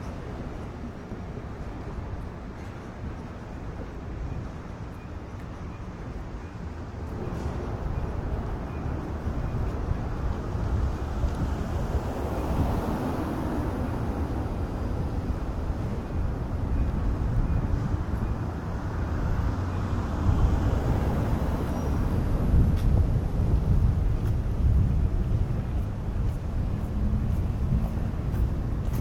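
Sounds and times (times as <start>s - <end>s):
low street rumble: 0.0s - 29.0s.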